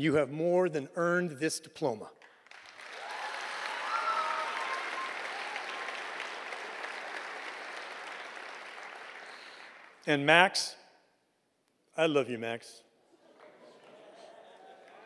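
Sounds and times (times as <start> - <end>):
audience applause: 2.5 - 10.0, 14.6 - 15.0.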